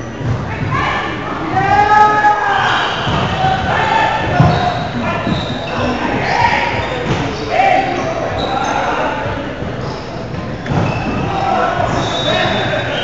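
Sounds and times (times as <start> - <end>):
players shouting calls: 0.0 - 13.0.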